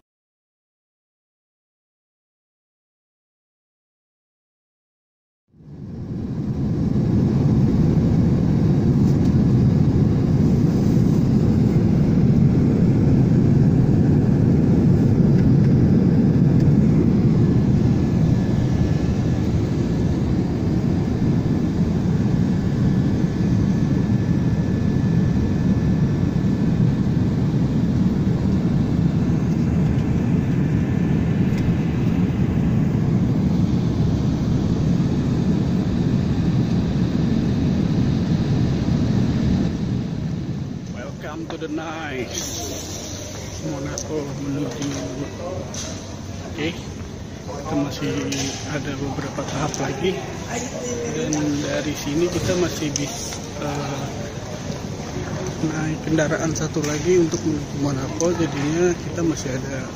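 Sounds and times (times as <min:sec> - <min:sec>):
airliner cabin rumble: 0:05.6 - 0:59.9.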